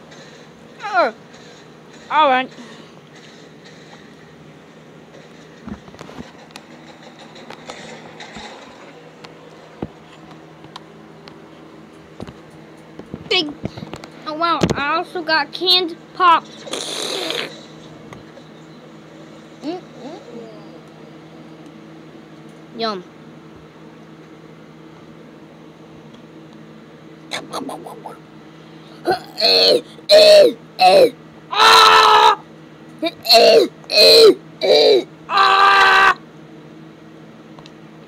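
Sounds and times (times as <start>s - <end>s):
steady low hum: 0.0s - 38.0s
person's voiced gliding sound: 27.3s - 28.2s
person coughing: 29.0s - 31.2s, 33.0s - 35.1s.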